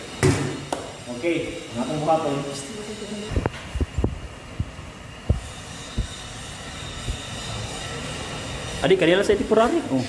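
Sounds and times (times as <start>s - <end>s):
gas burner hissing: 0.0s - 10.0s.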